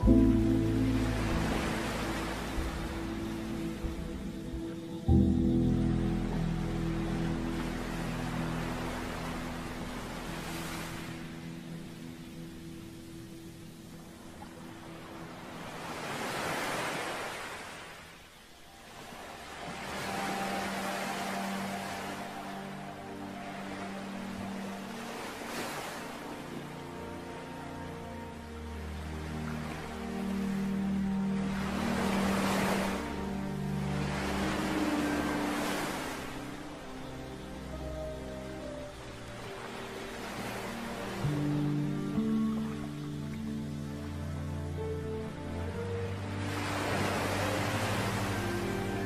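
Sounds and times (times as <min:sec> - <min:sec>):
ocean wave washing in: 0:00.0 - 0:04.5
held low music chord: 0:00.0 - 0:15.9, 0:18.6 - 0:49.0
ocean waves washing in: 0:00.0 - 0:49.0.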